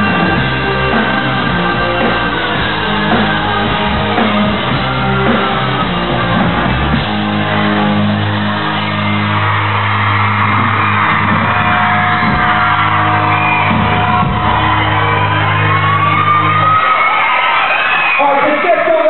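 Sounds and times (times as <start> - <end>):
live rock band playing: 0.0 - 19.0
people shouting: 7.4 - 19.0.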